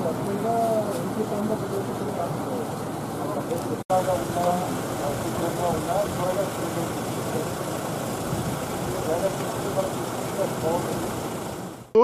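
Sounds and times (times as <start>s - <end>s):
people talking indistinctly: 0.0s - 11.3s
car engine idling: 0.0s - 12.0s
street noise: 0.0s - 12.0s.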